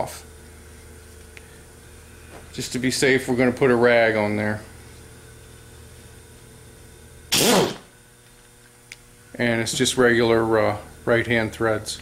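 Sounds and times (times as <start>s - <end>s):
air impact wrench burst: 7.3s - 7.9s.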